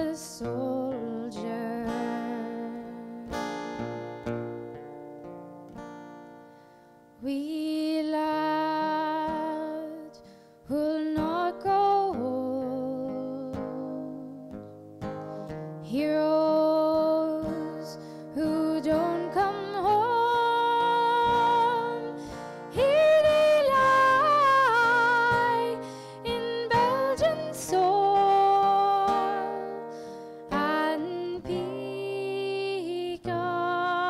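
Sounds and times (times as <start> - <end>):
woman singing with vibrato: 0.0 - 3.9, 7.2 - 14.6, 15.8 - 34.0
fingerpicked acoustic guitar: 0.0 - 34.0.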